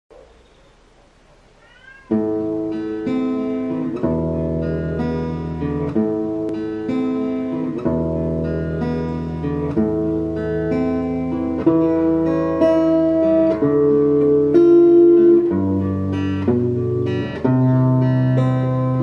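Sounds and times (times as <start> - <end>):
acoustic guitar strumming: 2.1 - 19.0.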